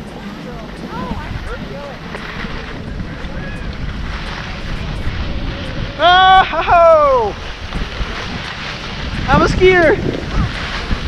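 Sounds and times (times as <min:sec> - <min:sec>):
skis sliding over snow: 0:00.0 - 0:11.0
wind buffeting microphone: 0:00.0 - 0:11.0.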